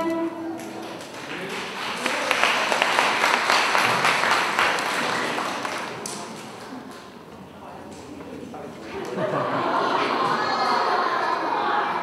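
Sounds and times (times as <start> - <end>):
audience applause: 0.6 - 6.9.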